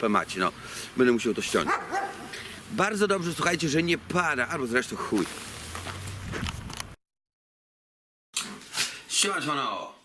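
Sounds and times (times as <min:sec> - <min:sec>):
man speaking: 0:00.0 - 0:01.9, 0:02.7 - 0:05.3, 0:09.1 - 0:10.0.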